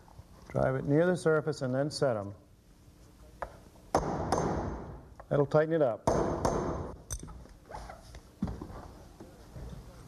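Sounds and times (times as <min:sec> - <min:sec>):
hammer striking nail: 0:03.9 - 0:04.9, 0:06.0 - 0:07.0.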